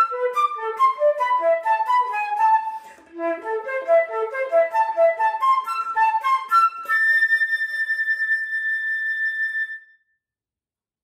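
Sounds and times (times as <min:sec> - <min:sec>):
flute holding a high note: 0:00.0 - 0:09.9.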